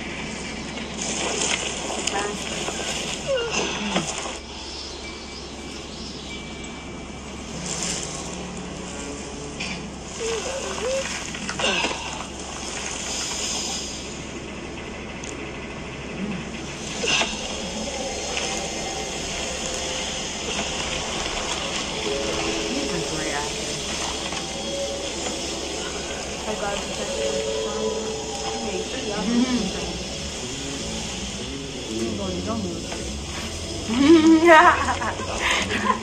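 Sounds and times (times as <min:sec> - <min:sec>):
noisy cinematic ambience: 0:00.0 - 0:36.0.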